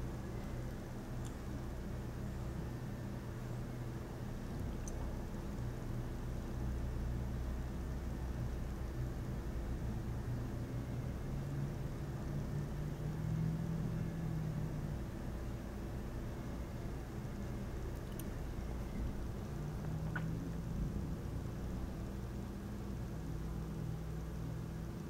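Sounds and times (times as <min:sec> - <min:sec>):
steady low hum: 0:00.0 - 0:25.0.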